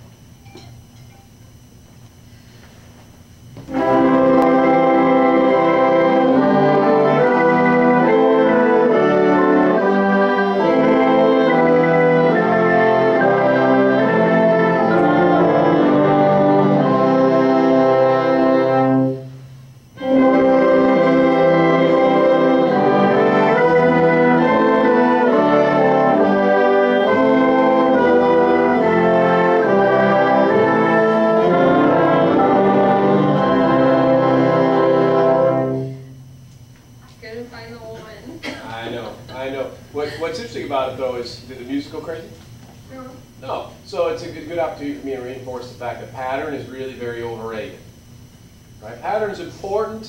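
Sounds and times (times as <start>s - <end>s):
string orchestra playing slow chords: 3.7s - 19.3s, 20.0s - 36.2s.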